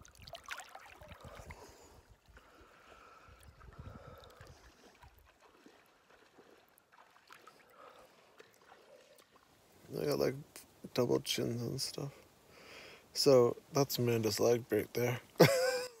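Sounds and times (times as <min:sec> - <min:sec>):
water sloshing around swimmer: 0:00.0 - 0:09.9
soft low water rumbles: 0:00.0 - 0:16.0.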